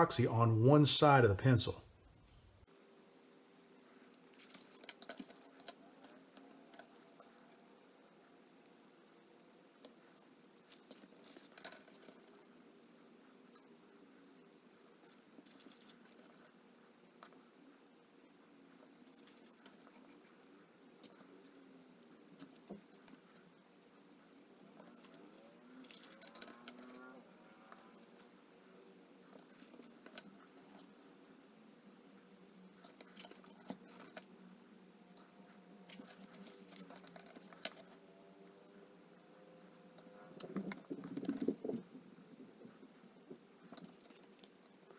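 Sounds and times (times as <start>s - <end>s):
low room hum: 0.0s - 44.9s
wooden pencils clicking and tapping: 4.4s - 7.6s.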